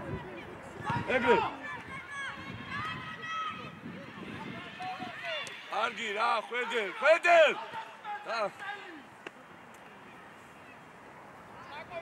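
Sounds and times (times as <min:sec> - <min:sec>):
distant players shouting: 0:00.3 - 0:09.2.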